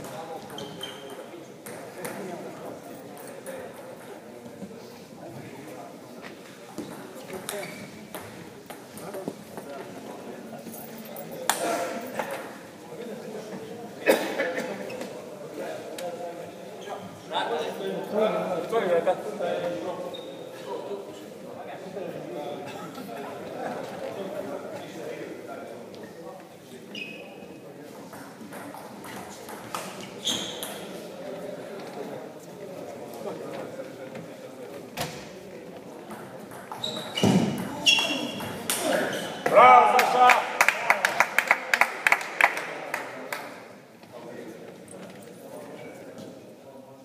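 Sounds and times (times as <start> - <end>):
murmur of voices: 0.0 - 47.0.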